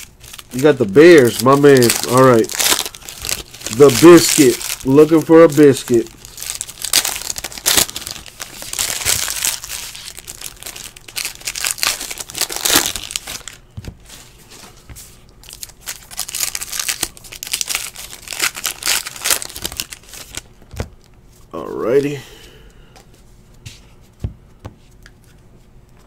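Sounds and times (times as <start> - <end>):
foil wrapper tearing and crinkling: 0.0 - 13.6, 15.4 - 20.5.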